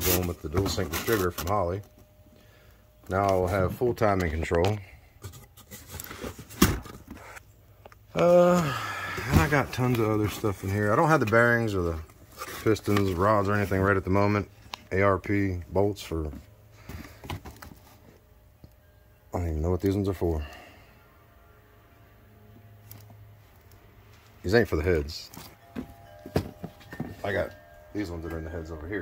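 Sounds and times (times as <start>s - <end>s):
cardboard boxes rustling: 0.0s - 1.9s, 3.1s - 7.4s, 9.0s - 14.2s, 16.0s - 18.3s, 25.2s - 29.0s
cardboard boxes knocking and rustling: 5.2s - 7.2s, 9.2s - 10.6s, 25.3s - 27.6s.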